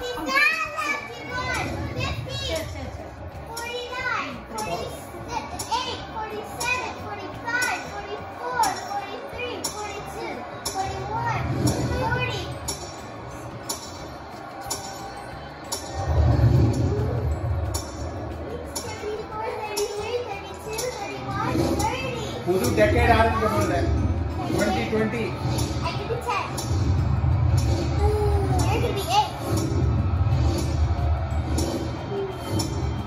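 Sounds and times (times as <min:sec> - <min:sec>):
children chattering and calling out: 0:00.0 - 0:27.0, 0:27.6 - 0:30.7.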